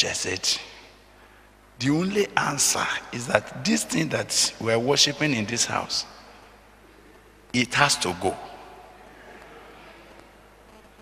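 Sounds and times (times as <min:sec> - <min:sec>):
faint buzzing hum and hiss: 0:00.0 - 0:11.0.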